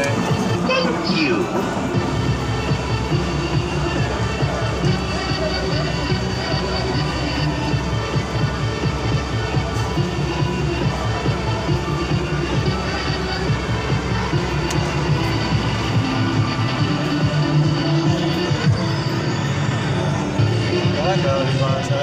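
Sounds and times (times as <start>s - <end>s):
arcade game music and jingles: 0.0s - 4.6s.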